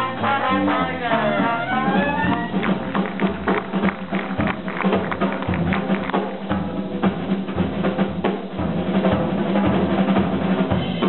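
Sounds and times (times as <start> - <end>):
horn line sliding: 0.0 - 3.1
upright string bass: 0.0 - 7.7
drum kit: 0.0 - 11.0.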